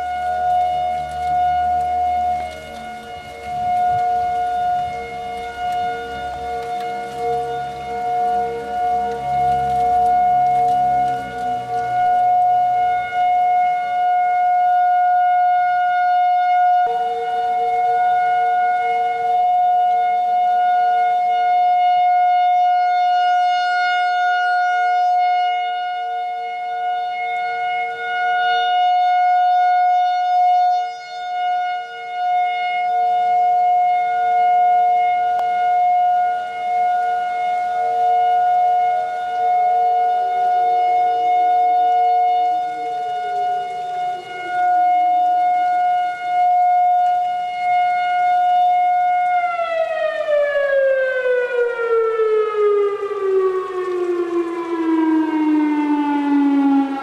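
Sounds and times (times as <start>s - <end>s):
warning siren: 0.0s - 57.0s.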